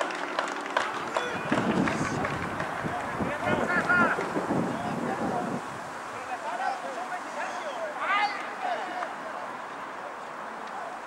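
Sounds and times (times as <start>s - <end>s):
distant players shouting: 0.6s - 11.0s
wind buffeting microphone: 0.8s - 6.9s.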